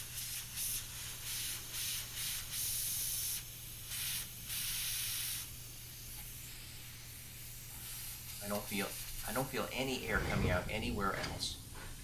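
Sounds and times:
steady low hum: 9.8 - 12.0.

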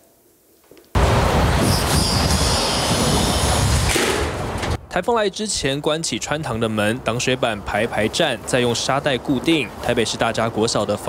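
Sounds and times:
high door squeal: 1.6 - 4.8.

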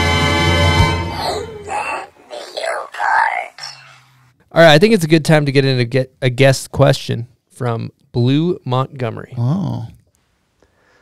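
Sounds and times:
person moaning: 1.1 - 3.0.

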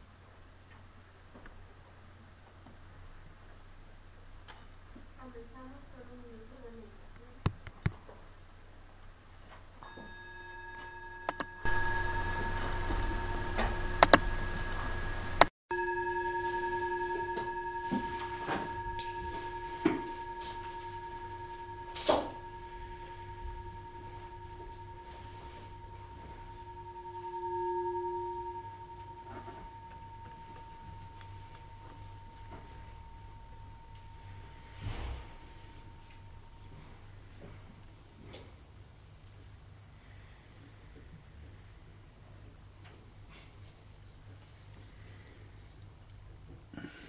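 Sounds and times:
background hum and hiss: 0.0 - 47.0
metal bell ringing: 9.8 - 37.4.

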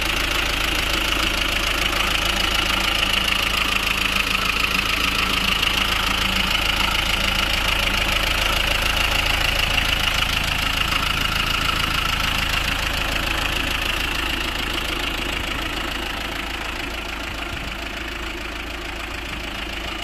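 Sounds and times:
diesel truck engine idling: 0.0 - 20.0.

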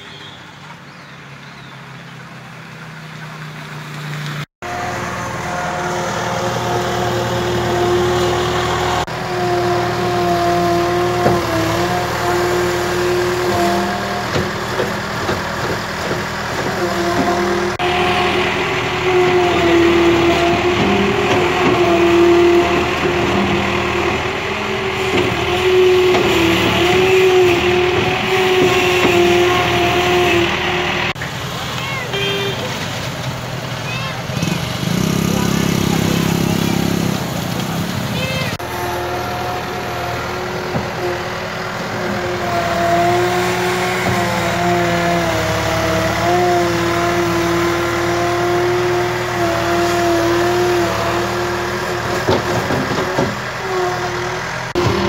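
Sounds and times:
earthmover engine running: 0.6 - 55.0.

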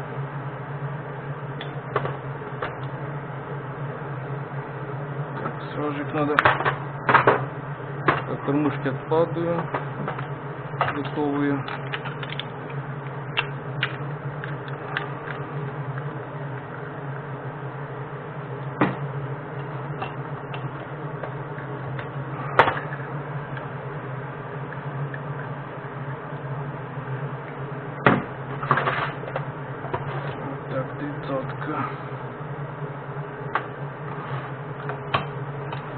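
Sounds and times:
steady low hum: 0.0 - 35.9.

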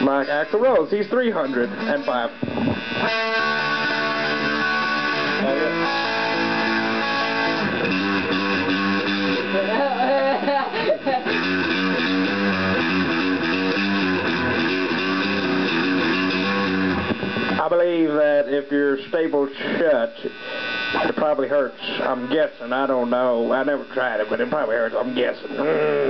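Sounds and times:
electric guitar chords: 0.0 - 18.9.

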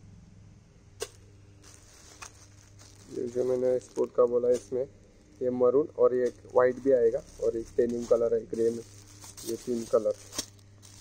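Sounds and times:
low steady hum: 0.0 - 11.0
plastic rustling: 1.6 - 11.0.

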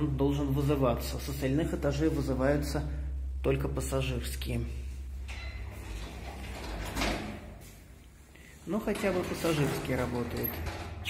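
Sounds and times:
low steady hum: 0.0 - 11.0
elevator doors sliding shut: 5.1 - 7.9, 8.7 - 11.0.

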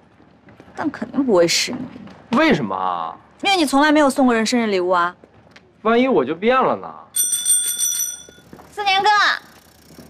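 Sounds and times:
bicycle bell trill: 7.2 - 9.5.

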